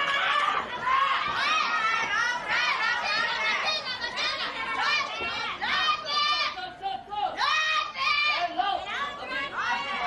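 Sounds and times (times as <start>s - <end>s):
women yelling and shouting: 0.0s - 10.0s.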